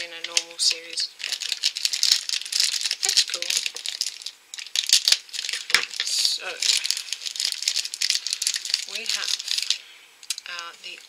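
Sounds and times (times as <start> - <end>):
plastic wrapper crinkling: 0.0 - 11.0.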